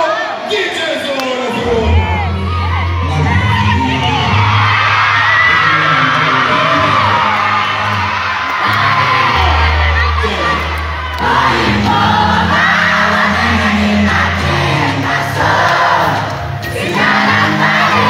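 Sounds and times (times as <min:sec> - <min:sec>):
crowd cheering and shouting: 0:00.0 - 0:18.0
bass-heavy music: 0:01.6 - 0:18.0.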